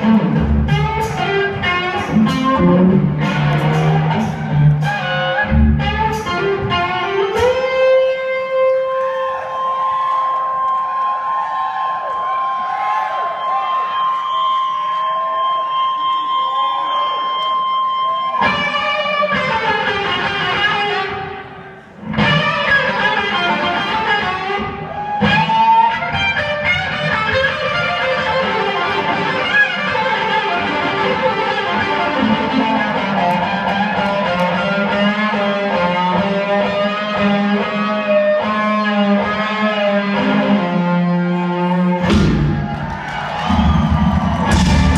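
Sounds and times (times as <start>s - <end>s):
live rock band: 0.0s - 9.9s, 17.3s - 44.9s.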